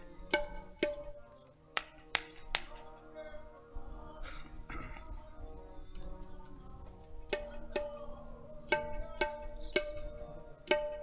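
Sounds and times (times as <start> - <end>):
sharp percussion strikes: 0.0 - 3.0, 7.3 - 11.0.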